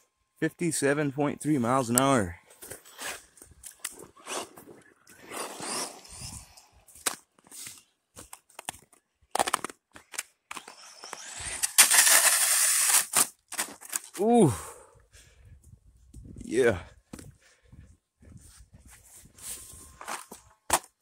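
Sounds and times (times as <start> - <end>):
rc car motor rushing past: 4.2 - 6.8, 10.6 - 13.2.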